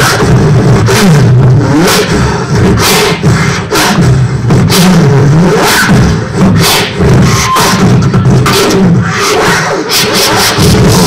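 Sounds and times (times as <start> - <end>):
beatboxing into a microphone: 0.0 - 11.0
low hummed bass note: 5.9 - 9.1.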